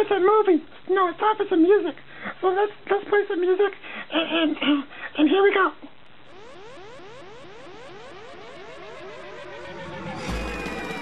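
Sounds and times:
electronic rising pitch sweep: 0:06.2 - 0:11.0.

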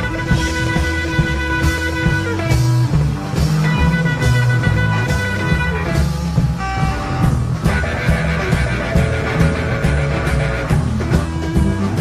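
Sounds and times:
blues rock song: 0:00.0 - 0:12.0.

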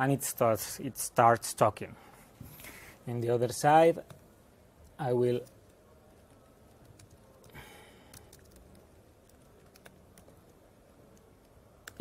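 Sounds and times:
laptop keyboard clicks: 0:06.7 - 0:12.0.

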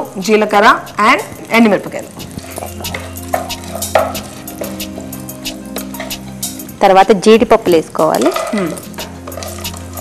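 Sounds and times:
background music with held notes: 0:00.0 - 0:10.0
wooden spatula stirring in pot: 0:00.8 - 0:06.6, 0:08.2 - 0:10.0.

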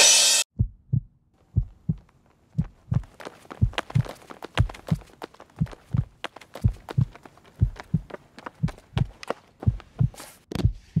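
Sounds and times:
heartbeat double thumps: 0:00.5 - 0:11.0.

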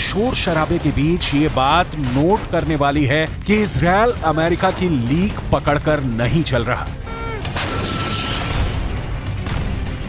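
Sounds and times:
artillery blast with rumble: 0:07.5 - 0:10.0.

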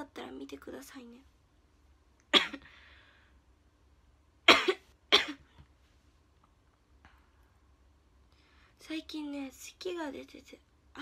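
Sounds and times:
woman coughing: 0:02.3 - 0:02.7, 0:04.5 - 0:05.5.

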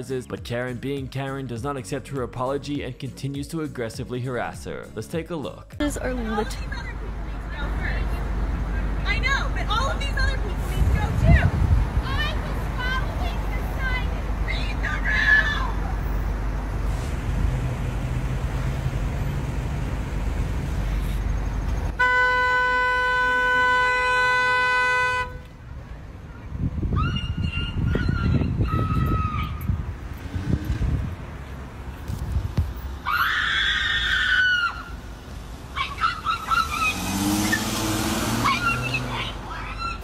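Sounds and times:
car horn held: 0:22.0 - 0:25.6
woman screaming: 0:26.9 - 0:29.7, 0:33.0 - 0:35.0, 0:35.8 - 0:37.7, 0:38.4 - 0:40.0.

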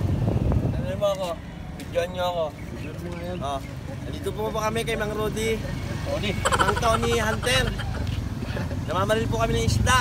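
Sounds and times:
people talking: 0:02.0 - 0:10.0.

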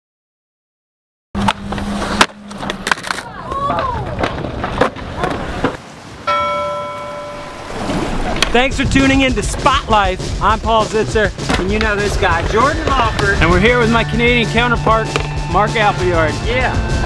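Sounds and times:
skateboard clacking: 0:01.4 - 0:05.8, 0:08.3 - 0:09.9, 0:10.8 - 0:13.4
skateboard grinding: 0:01.4 - 0:05.8, 0:06.8 - 0:13.9
skateboard rolling: 0:01.4 - 0:06.2, 0:06.9 - 0:14.0
bell-like chime: 0:06.3 - 0:08.0.

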